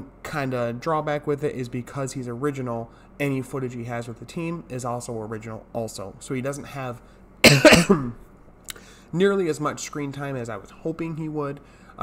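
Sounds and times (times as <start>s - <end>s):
man coughing: 7.4s - 8.3s.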